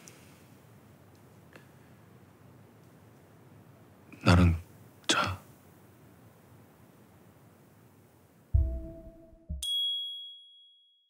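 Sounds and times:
bright high ding: 9.6s - 10.8s.

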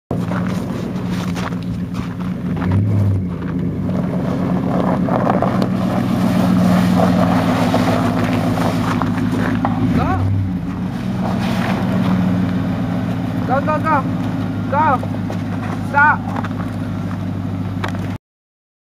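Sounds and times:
engine running at low revs: 0.1s - 18.2s.

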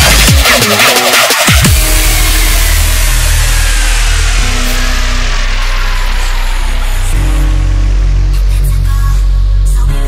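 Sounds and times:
distorted bass synth: 0.0s - 10.0s.

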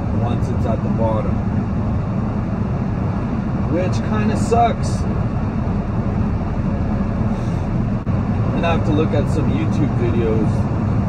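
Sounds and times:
truck engine and road noise drone: 0.0s - 11.0s.

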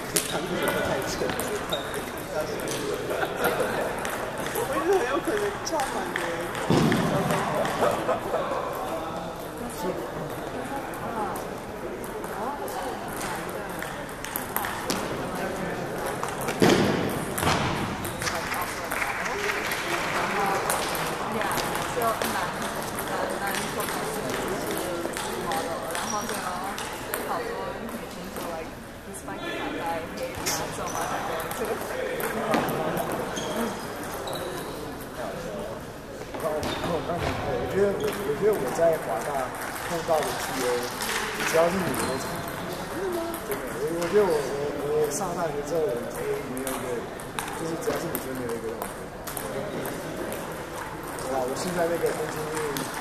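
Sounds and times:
people talking: 0.0s - 16.7s
background chatter: 0.0s - 53.0s
table tennis ball bouncing: 0.1s - 8.0s, 11.2s - 19.1s, 20.2s - 28.5s, 30.3s - 35.1s, 36.3s - 53.0s.

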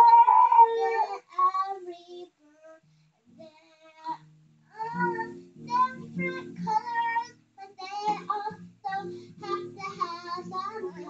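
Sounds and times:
girl singing softly: 0.0s - 11.0s.

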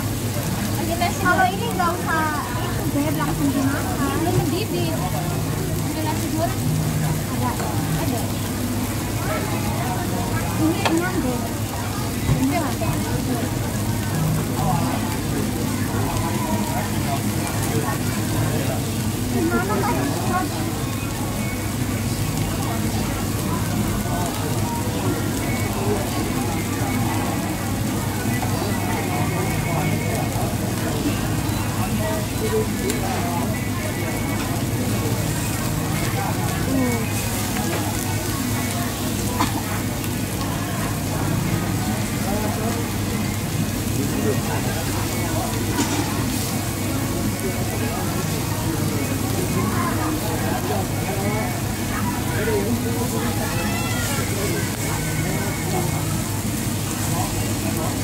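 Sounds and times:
food sizzling: 0.0s - 58.0s
indistinct diners' chatter: 0.0s - 58.0s.

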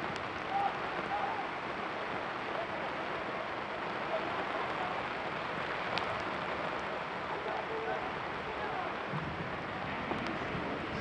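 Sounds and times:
outdoor ambient hiss: 0.0s - 11.0s
distant players shouting: 0.4s - 1.7s, 7.4s - 9.1s.

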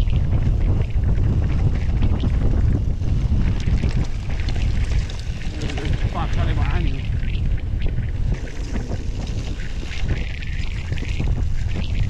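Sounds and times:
wind buffeting microphone: 0.0s - 12.0s
bike rattling over stones: 0.3s - 12.0s.

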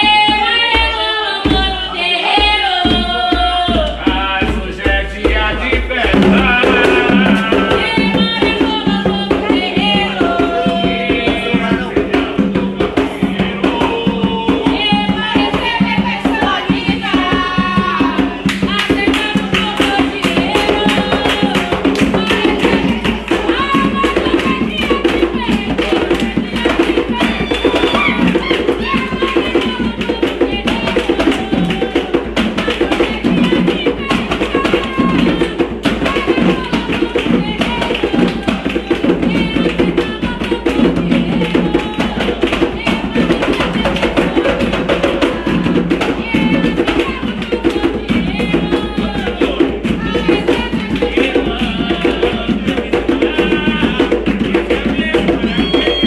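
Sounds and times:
group singing: 0.0s - 56.0s
hand drums playing: 0.0s - 56.0s.

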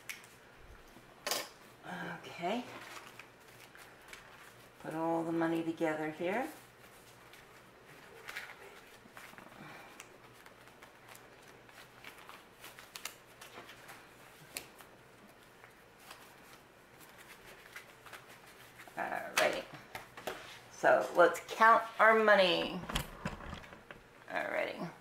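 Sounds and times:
paper banknotes rustling: 2.6s - 20.7s.

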